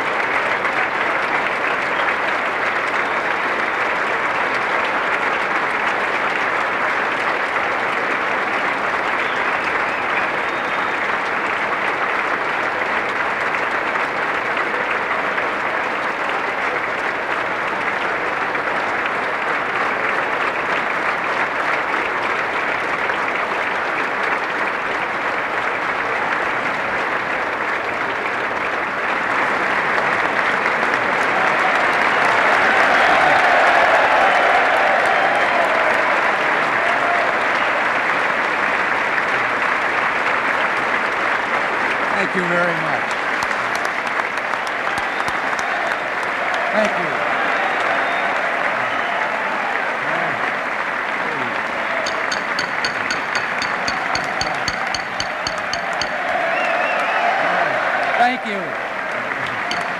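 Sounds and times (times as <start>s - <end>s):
audience applauding: 0.0s - 59.9s.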